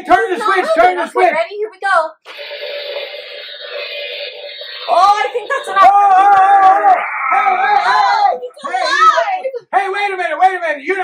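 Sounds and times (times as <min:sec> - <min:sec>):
electric buzzing: 0:02.3 - 0:07.6.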